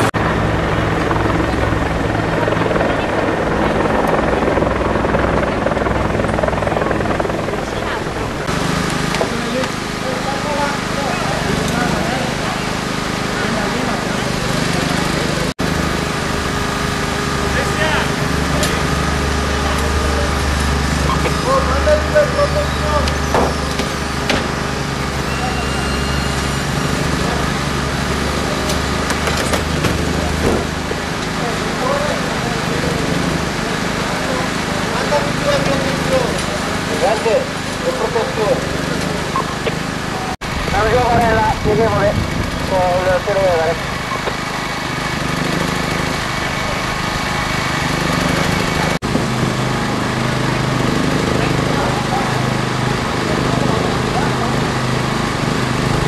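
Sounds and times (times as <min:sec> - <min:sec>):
small engine humming: 0:00.0 - 0:56.0
people talking: 0:00.7 - 0:15.5, 0:17.1 - 0:23.7, 0:25.0 - 0:44.4, 0:48.1 - 0:56.0
knocks and clanks: 0:23.0 - 0:24.6, 0:28.7 - 0:31.0.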